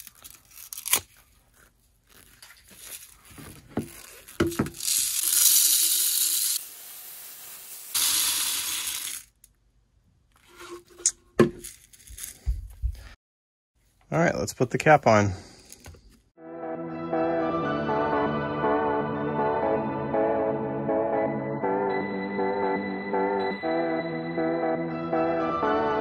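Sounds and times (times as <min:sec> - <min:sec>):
bbs pouring into pipe: 0:04.1 - 0:09.4.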